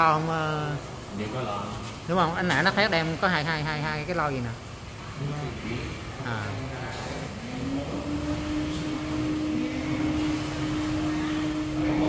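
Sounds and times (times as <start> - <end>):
motor humming: 4.8 - 12.0.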